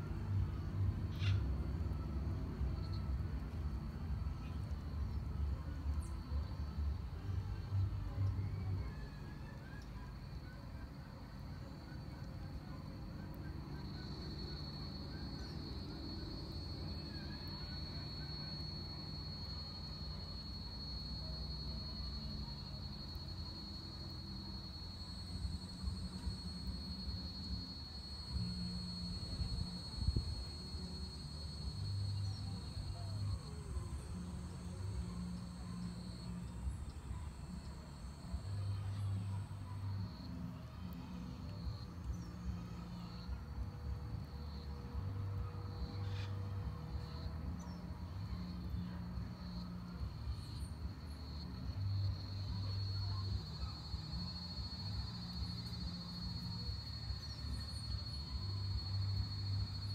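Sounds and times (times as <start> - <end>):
insects trilling: 13.4 - 40.3, 45.8 - 46.3, 50.3 - 59.9.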